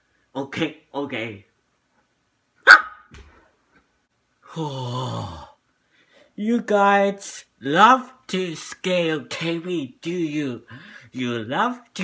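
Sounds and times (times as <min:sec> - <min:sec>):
dog barking: 0:02.6 - 0:03.1.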